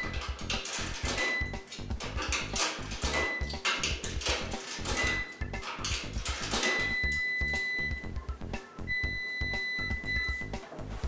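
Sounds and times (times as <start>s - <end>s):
background music with steady beat: 0.0s - 11.0s
washing machine electronic beeps: 0.0s - 11.0s.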